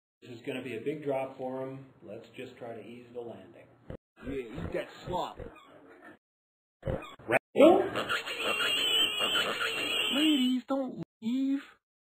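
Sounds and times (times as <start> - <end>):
cartoon pig squealing: 6.8 - 10.6.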